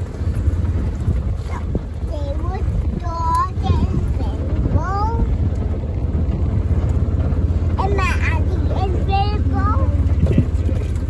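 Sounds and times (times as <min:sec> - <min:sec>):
farm vehicle rumbling: 0:00.0 - 0:11.0
wind on microphone: 0:00.0 - 0:11.0.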